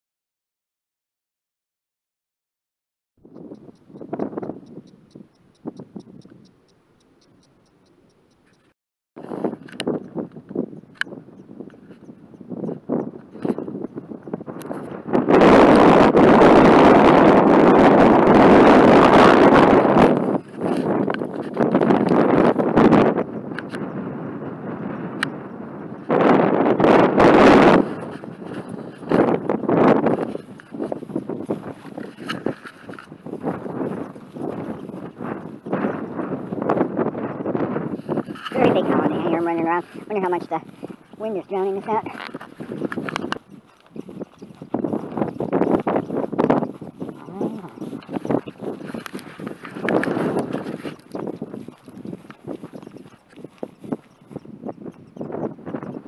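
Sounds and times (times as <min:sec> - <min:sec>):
wind buffeting microphone: 0:03.2 - 0:56.0.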